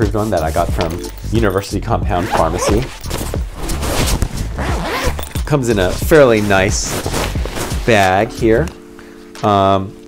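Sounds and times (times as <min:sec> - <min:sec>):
zipper zipping on fabric case: 0:02.2 - 0:08.1.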